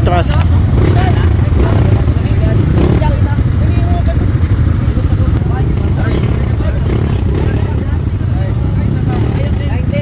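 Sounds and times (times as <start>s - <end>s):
dirt bike engines running: 0.0s - 10.0s
people's voices: 0.0s - 10.0s.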